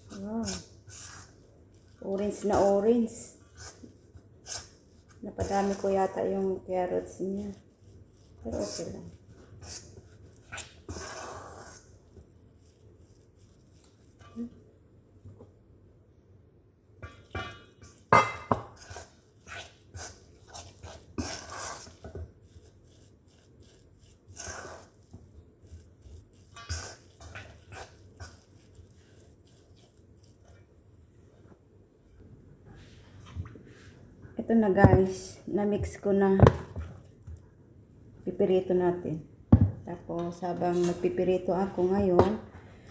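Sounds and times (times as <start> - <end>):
fork scraping metal bowl: 0.0 - 12.0, 12.6 - 14.6, 17.1 - 30.7, 40.5 - 42.4.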